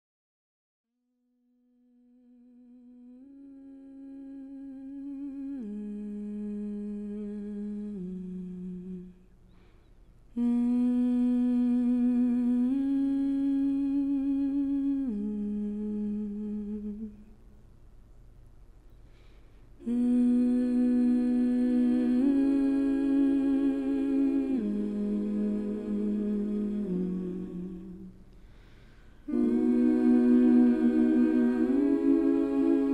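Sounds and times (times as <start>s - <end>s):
person humming a slow melody: 1.8s - 9.4s, 10.4s - 17.3s, 19.8s - 28.2s, 29.3s - 32.9s.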